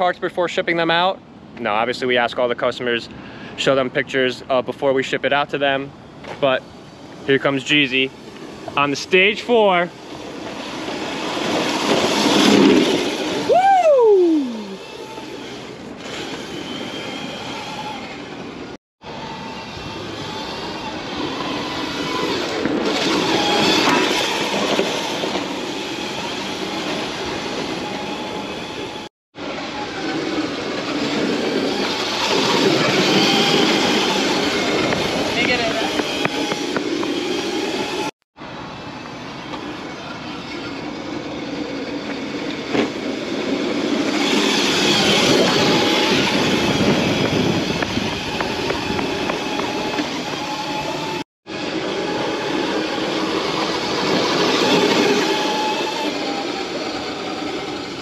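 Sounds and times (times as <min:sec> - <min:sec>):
small wheels rolling and scraping: 0:06.2 - 0:13.7, 0:14.4 - 0:58.0
falling tone sweep: 0:07.2 - 0:58.0.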